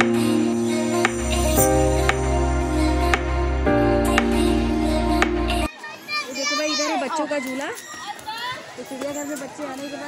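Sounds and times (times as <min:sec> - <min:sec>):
background music: 0:00.0 - 0:05.7
children playing and calling out: 0:05.7 - 0:10.0.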